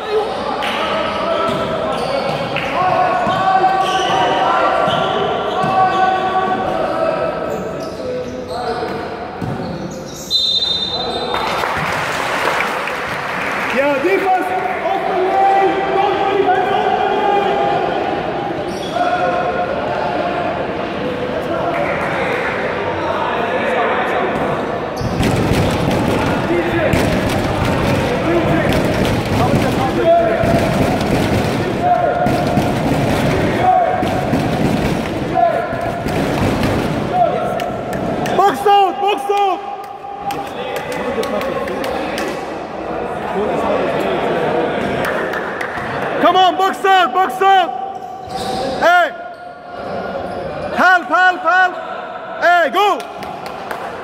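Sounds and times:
basketball bouncing on court: 25.0 - 37.1
people shouting: 25.6 - 37.6.

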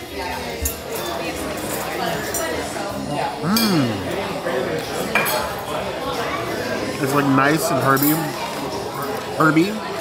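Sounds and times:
restaurant background chatter: 0.0 - 10.0
fork and dishes clinking: 3.4 - 4.2.

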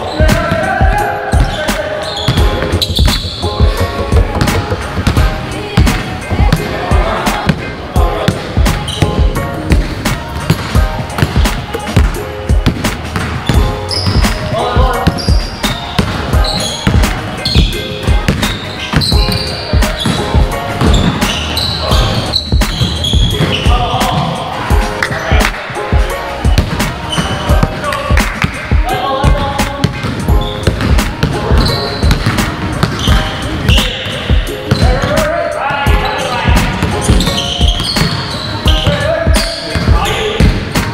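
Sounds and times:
players' voices: 0.0 - 40.9
basketballs bouncing on hardwood: 2.2 - 6.6, 7.4 - 24.3, 29.2 - 35.2, 35.9 - 40.8.

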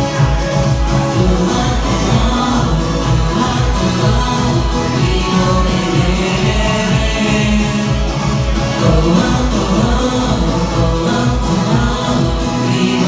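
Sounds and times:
backing track with bass beat: 0.0 - 13.0
person singing pop song: 0.0 - 13.0.

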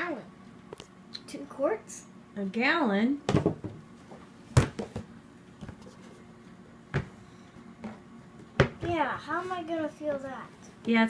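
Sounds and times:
plastic jug knocking on wooden table: 3.3 - 3.8, 7.8 - 8.9.

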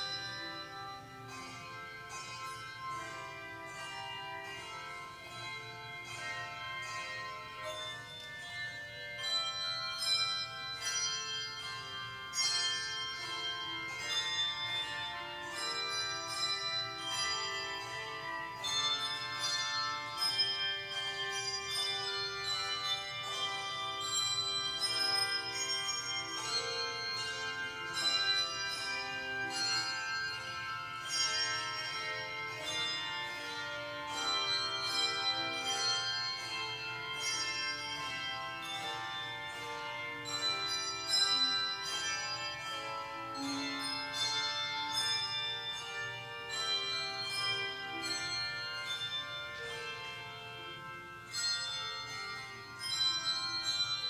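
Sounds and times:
handbell choir playing chords: 0.0 - 54.0.

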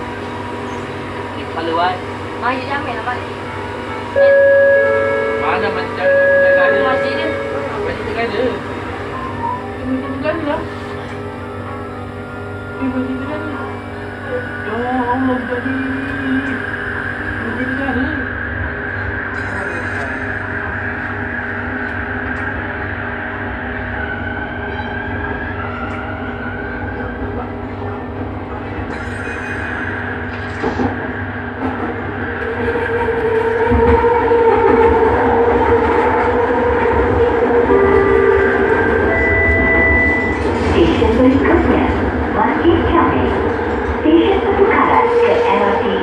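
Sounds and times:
metro train rumble: 0.0 - 46.0.

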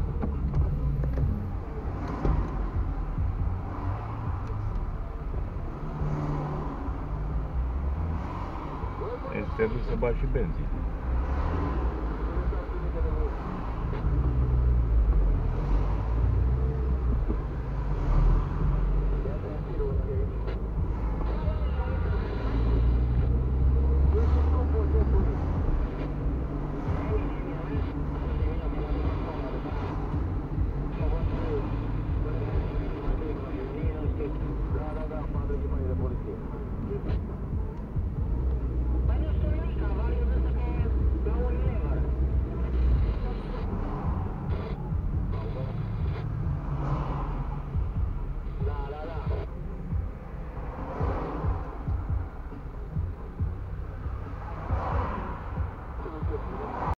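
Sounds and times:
car engine and road rumble: 0.0 - 56.9
faint voices talking: 0.0 - 56.9.

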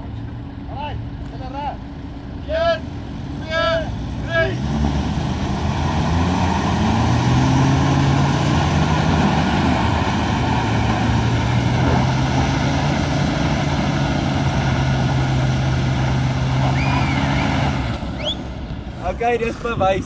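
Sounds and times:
engines revving hard: 2.8 - 19.2.

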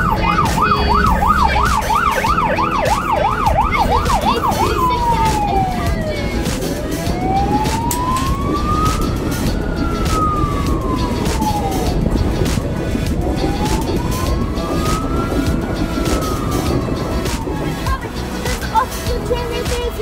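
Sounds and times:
siren wailing: 0.0 - 18.2
electric train rumbling past: 0.0 - 19.6.

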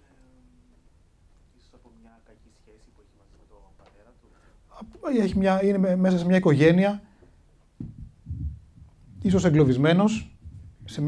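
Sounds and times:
microphone handling thumps: 7.7 - 11.0.

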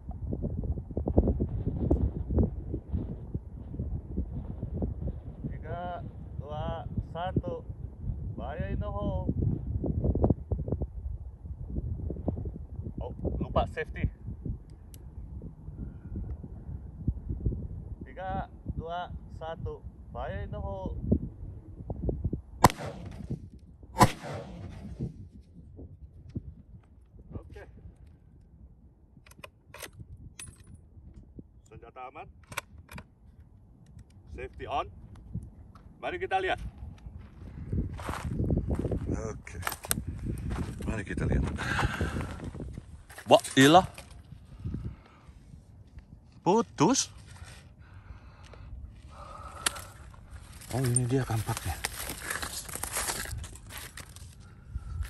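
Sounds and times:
wind rumble on microphone: 0.0 - 55.0
rifle shots: 22.6 - 23.3, 24.0 - 24.9.

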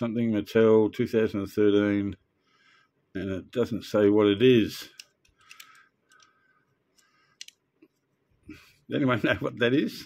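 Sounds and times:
light plastic clicks: 4.9 - 7.6.

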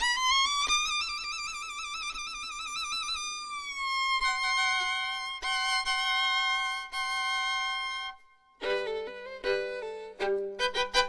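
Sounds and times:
solo violin with vibrato: 0.0 - 11.0.

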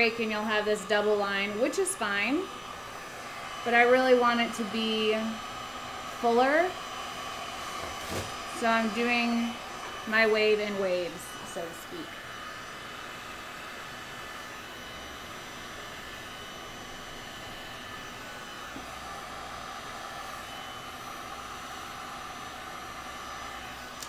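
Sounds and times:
heat gun blowing air: 0.0 - 24.0.

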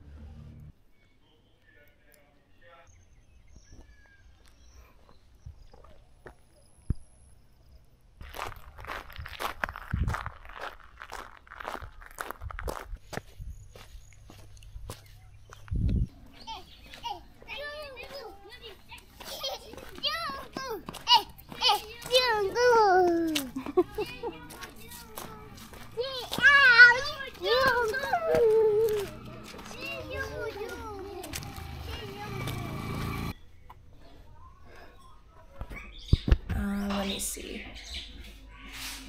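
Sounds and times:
children shouting: 16.4 - 33.3.

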